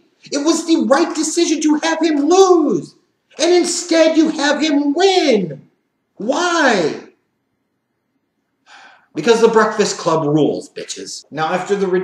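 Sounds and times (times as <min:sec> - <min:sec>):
man's intake of breath: 0:08.6 - 0:09.2.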